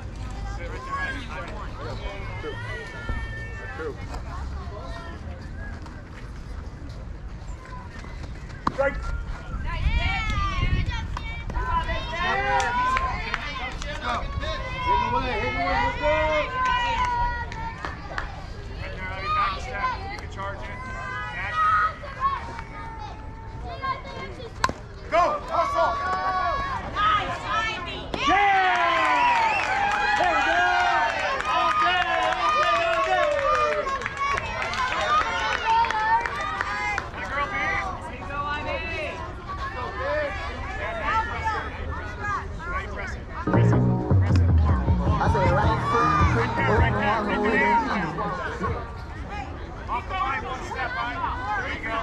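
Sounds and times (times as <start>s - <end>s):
crowd shouting and cheering: 8.7s - 19.8s, 43.4s - 52.0s
low rumble: 43.5s - 47.2s
high-pitched voices chattering: 43.5s - 49.2s.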